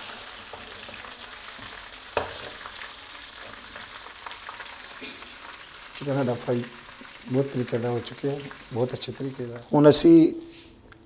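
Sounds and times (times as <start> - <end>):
chicken sizzling in hot oil: 0.0 - 10.2.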